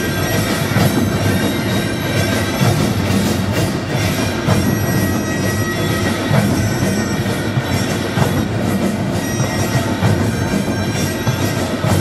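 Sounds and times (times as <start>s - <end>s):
hand drums: 0.0s - 12.0s.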